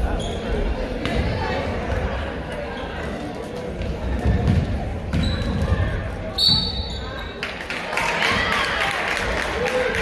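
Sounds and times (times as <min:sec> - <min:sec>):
spectators talking: 0:00.0 - 0:10.0
basketball bouncing on wood floor: 0:04.2 - 0:05.9.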